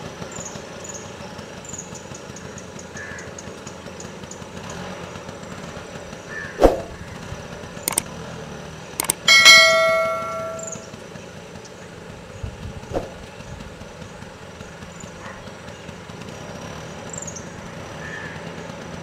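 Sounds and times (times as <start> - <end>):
swoosh: 6.6 - 7.0
clicks: 7.9 - 8.1, 9.0 - 10.8
bell ding: 9.0 - 10.9.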